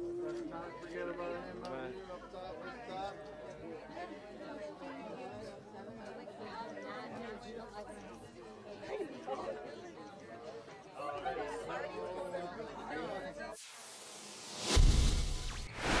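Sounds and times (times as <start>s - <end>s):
crowd chatter: 0.0s - 13.6s
rising whoosh: 13.6s - 16.0s
loud deep boom: 14.6s - 16.0s.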